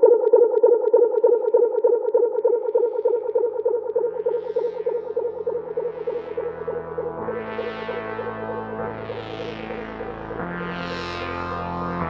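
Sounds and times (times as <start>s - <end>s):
low bass line: 5.4s - 12.0s.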